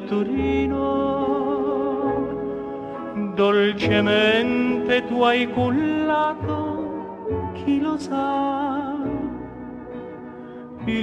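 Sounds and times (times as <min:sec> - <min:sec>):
man singing: 0:00.0 - 0:09.6, 0:10.8 - 0:11.0
slow instrumental accompaniment: 0:00.0 - 0:11.0.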